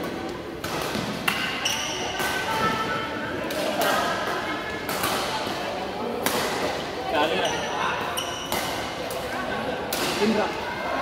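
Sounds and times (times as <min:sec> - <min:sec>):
badminton rackets hitting shuttlecock: 0:00.0 - 0:06.8, 0:08.0 - 0:10.4.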